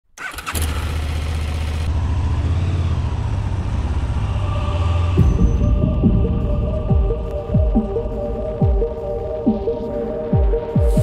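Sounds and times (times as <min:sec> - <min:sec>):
motorcycle engine starting and idling: 0:00.1 - 0:04.2.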